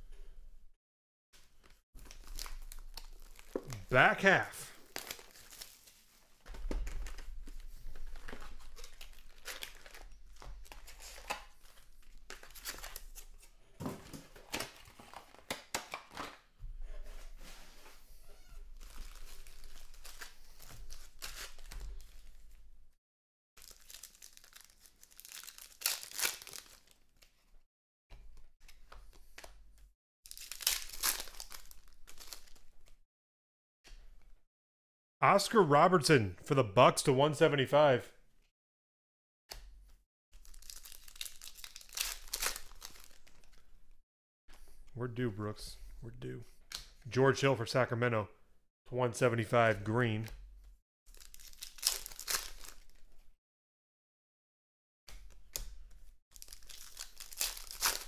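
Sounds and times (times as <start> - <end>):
card wrappers tearing and crinkling: 2.0 - 6.2, 7.0 - 13.5, 18.8 - 22.4, 23.6 - 27.3, 30.3 - 32.7, 40.4 - 43.6, 51.1 - 53.0, 56.3 - 58.0.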